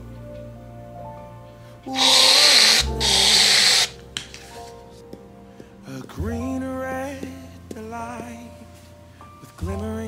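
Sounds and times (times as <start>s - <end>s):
soft background music with singing: 0.0s - 10.0s
aerosol whipped cream can hissing: 1.9s - 4.0s.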